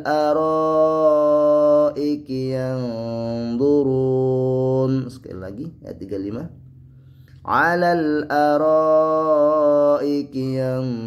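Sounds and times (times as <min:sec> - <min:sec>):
man chanting melodic recitation: 0:00.0 - 0:06.6.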